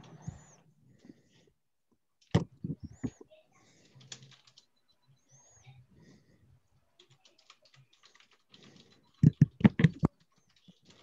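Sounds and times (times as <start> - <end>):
typing on computer keyboard: 3.7 - 4.7, 7.0 - 11.0.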